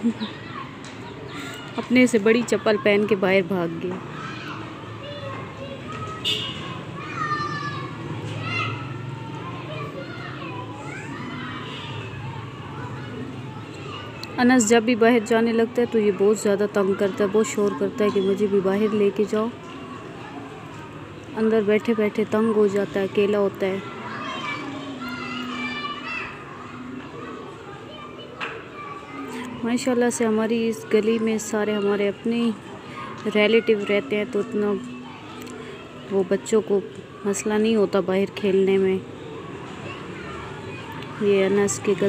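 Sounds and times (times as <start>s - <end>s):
children shouting while playing: 0.0s - 42.0s.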